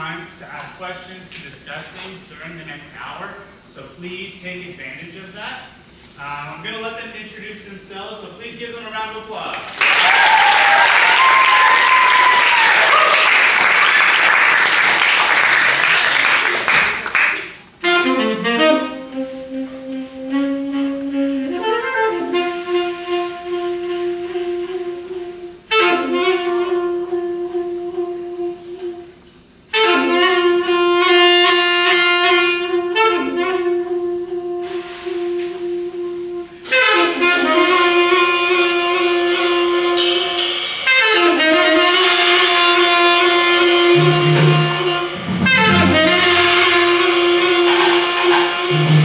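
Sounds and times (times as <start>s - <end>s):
drums: 9.6s - 49.0s
saxophone holding long note: 17.8s - 49.0s
low bass note: 43.1s - 49.0s.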